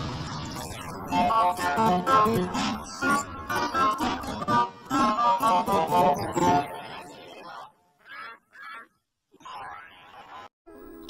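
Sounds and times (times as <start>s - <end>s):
distorted voice-like cries: 0.5s - 10.5s.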